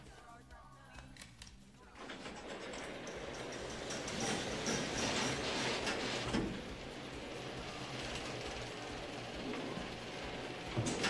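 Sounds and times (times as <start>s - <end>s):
garage door opener motor running: 1.8s - 11.0s.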